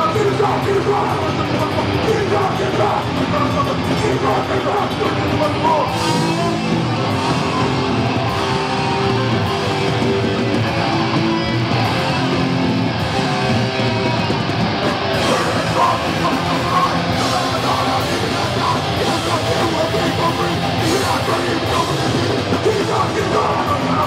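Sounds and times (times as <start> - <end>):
punk rock band playing: 0.0 - 24.0.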